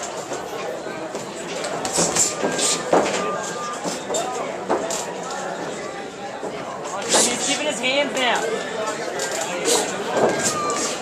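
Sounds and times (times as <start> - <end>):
spectators chattering and calling out: 0.0 - 11.0.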